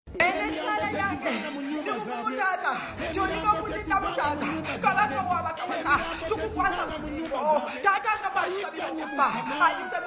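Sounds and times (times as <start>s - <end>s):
background voices: 2.6s - 10.0s.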